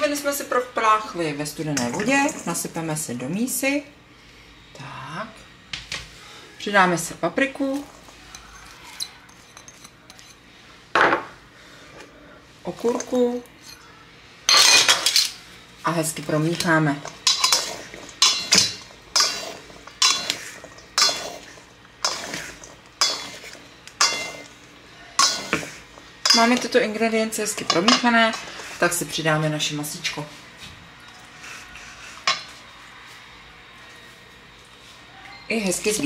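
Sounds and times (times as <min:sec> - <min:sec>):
kitchenware clinking on metal bowl: 0:08.3 - 0:10.4, 0:14.5 - 0:15.4, 0:17.1 - 0:24.6, 0:25.2 - 0:26.8, 0:27.5 - 0:28.6.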